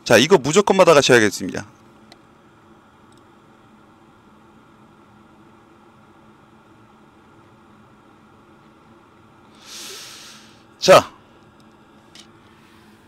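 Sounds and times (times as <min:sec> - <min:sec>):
low electrical hum: 0:00.0 - 0:13.0
faint hiss: 0:09.5 - 0:11.0.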